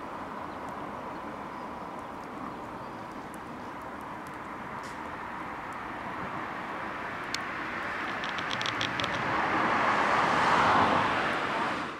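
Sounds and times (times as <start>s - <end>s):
passing vehicle: 4.4s - 11.9s
high ticks: 7.2s - 9.3s.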